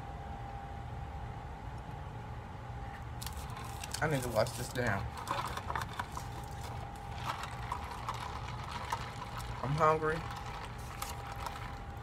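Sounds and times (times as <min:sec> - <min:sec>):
paper wrapper tearing: 0:03.2 - 0:11.8.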